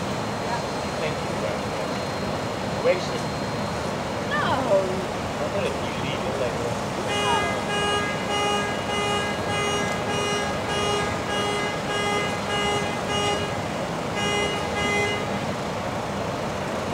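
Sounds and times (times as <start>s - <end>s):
car alarm horn honking: 7.0s - 15.6s.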